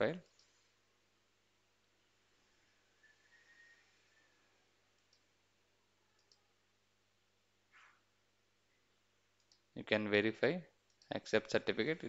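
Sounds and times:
computer mouse clicks: 0.2s - 0.6s, 4.9s - 5.3s, 6.2s - 6.5s, 9.4s - 9.7s.

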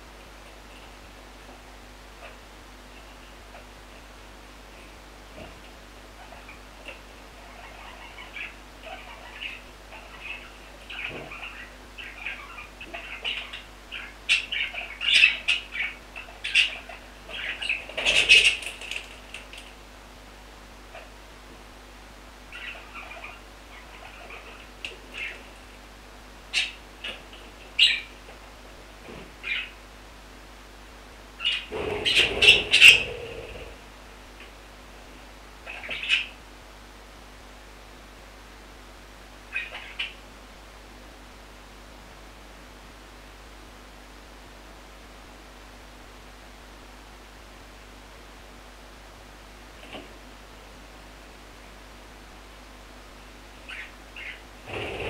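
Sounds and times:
steady hiss: 0.0s - 55.0s
budgerigars chirping: 7.4s - 19.0s, 22.5s - 24.6s, 26.5s - 27.2s, 27.8s - 28.1s, 29.4s - 29.8s, 31.4s - 33.8s, 35.6s - 36.4s, 39.5s - 40.2s, 53.7s - 55.0s
wing flutter: 31.5s - 33.9s, 54.6s - 55.0s.

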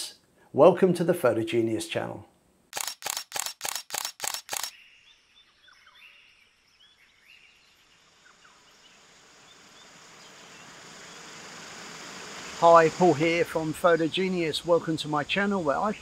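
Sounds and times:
sharp clicks: 2.7s - 4.7s.

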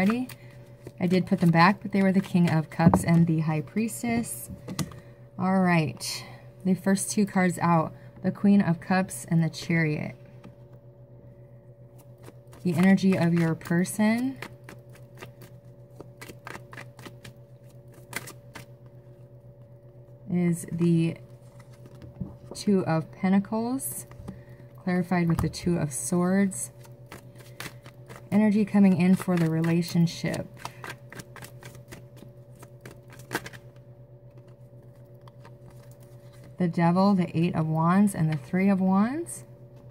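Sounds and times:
cards being shuffled: 0.0s - 3.4s, 12.0s - 19.0s, 26.7s - 36.6s.

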